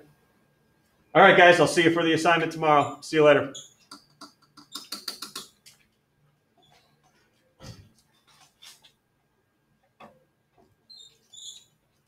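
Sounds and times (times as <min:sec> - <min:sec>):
short high-pitched squeaks: 0:02.7 - 0:05.6, 0:06.6 - 0:07.1, 0:10.9 - 0:12.0.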